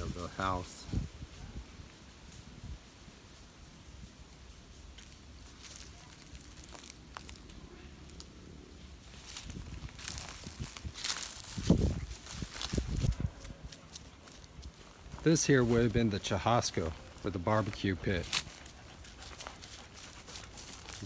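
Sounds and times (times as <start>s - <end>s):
footsteps crunching through dry leaves: 2.2s - 21.0s.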